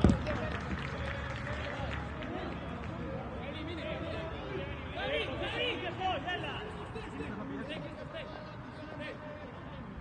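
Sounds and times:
empty stadium background noise: 0.0s - 10.0s.

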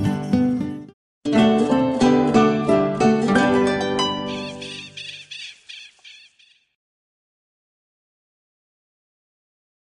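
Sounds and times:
plucked-string jingle chord: 0.0s - 4.6s
short high bird chirps: 4.3s - 6.8s.

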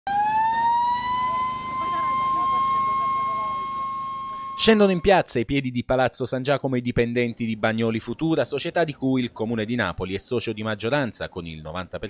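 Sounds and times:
siren-like high tone: 0.1s - 5.1s.

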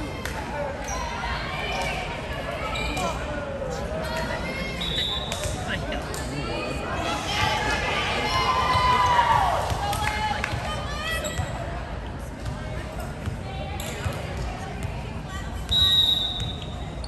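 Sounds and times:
players and spectators cheering: 7.0s - 11.3s.

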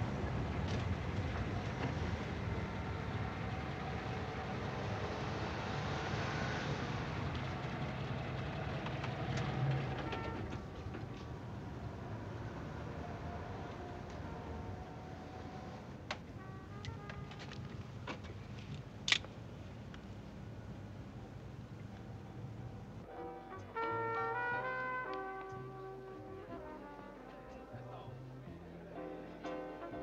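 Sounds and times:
low vehicle rumble: 0.0s - 23.1s.

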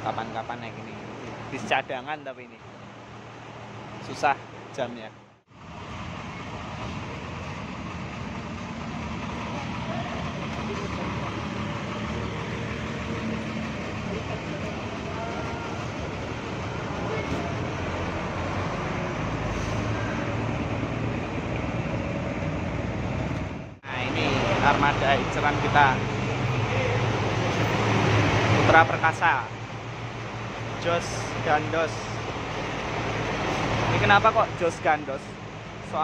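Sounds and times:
diesel bus engine rumbling: 0.0s - 36.0s
street traffic: 0.0s - 36.0s.

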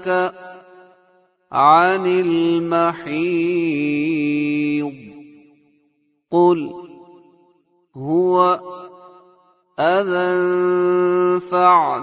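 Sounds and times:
man chanting melodically: 0.0s - 5.4s, 6.3s - 7.1s, 8.0s - 9.2s, 9.8s - 12.0s.

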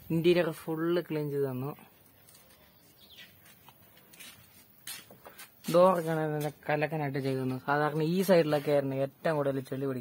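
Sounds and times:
faint bird chirp: 2.3s - 3.7s.

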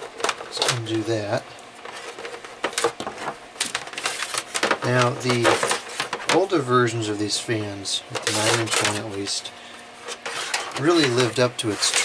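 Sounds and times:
power cord unwrapping: 0.0s - 1.1s, 1.8s - 6.6s, 8.1s - 9.2s, 10.1s - 12.0s.

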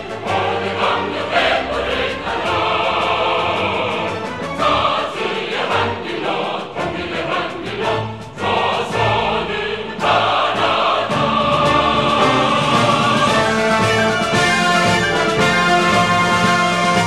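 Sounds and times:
choir singing: 0.0s - 17.0s
instrumental accompaniment: 0.0s - 17.0s.

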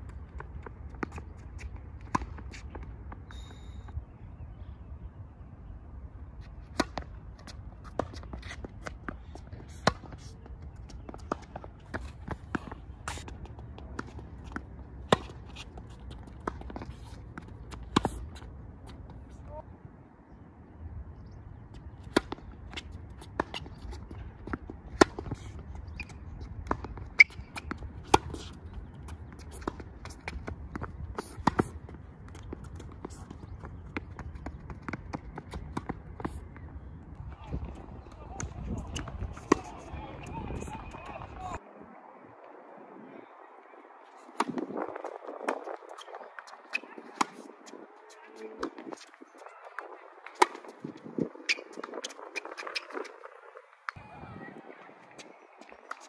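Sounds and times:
tennis balls bouncing on court: 0.0s - 3.6s, 6.6s - 19.4s, 21.7s - 41.6s, 44.3s - 53.2s
shoes scuffing on court: 0.0s - 4.0s, 6.4s - 19.4s
tennis balls struck by racquets: 0.4s - 3.1s, 6.7s - 18.5s, 22.0s - 36.4s, 37.3s - 41.4s, 45.5s - 47.5s, 49.7s - 50.8s.

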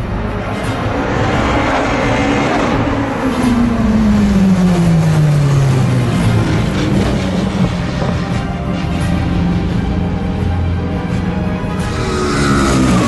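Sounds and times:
race car engine passing by: 0.1s - 9.2s, 11.8s - 13.0s.

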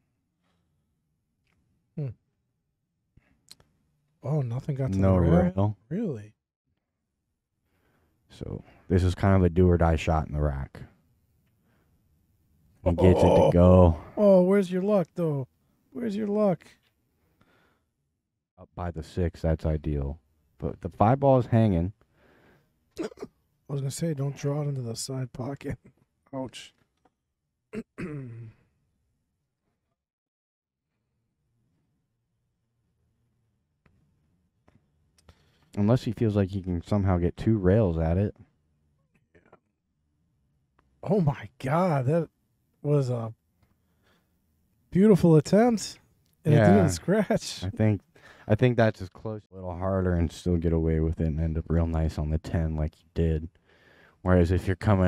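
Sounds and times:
man sighing: 12.9s - 14.2s, 28.1s - 28.6s, 46.5s - 47.0s.

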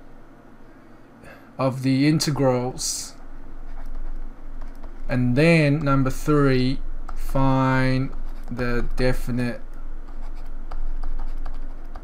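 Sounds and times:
low electrical hum: 0.0s - 12.0s
stylus scratching on tablet: 3.1s - 6.4s, 7.1s - 12.0s.

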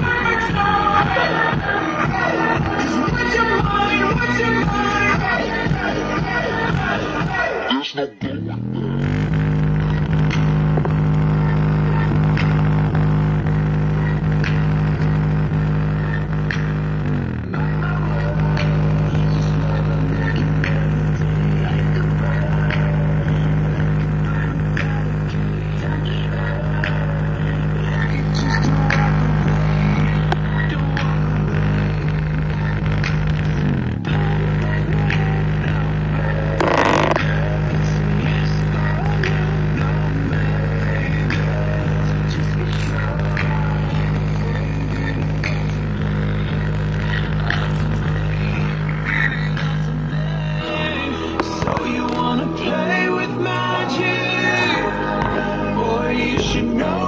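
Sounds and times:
bass-heavy music through speaker: 0.0s - 57.0s.

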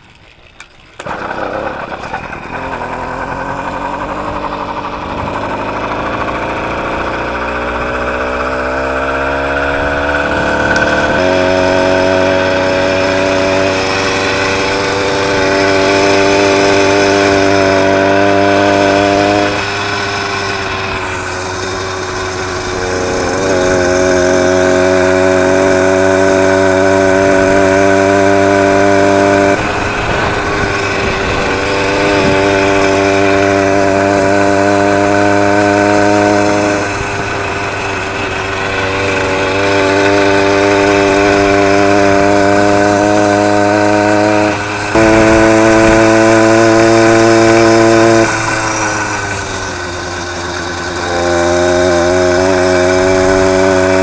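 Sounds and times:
two-stroke motorbike engine buzzing: 0.0s - 54.0s.

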